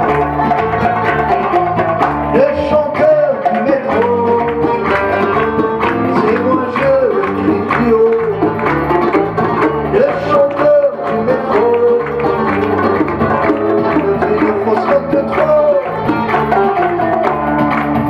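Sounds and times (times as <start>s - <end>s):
bass guitar: 0.0s - 18.0s
electric guitar lead line: 0.0s - 18.0s
hand drums: 0.0s - 18.0s
strummed guitar: 0.0s - 18.0s.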